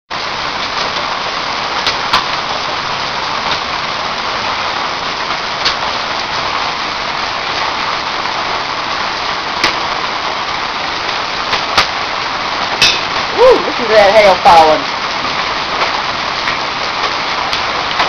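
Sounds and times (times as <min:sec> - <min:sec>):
heavy rain pouring: 0:00.1 - 0:18.0
hailstones ticking on hard surfaces: 0:00.2 - 0:18.0.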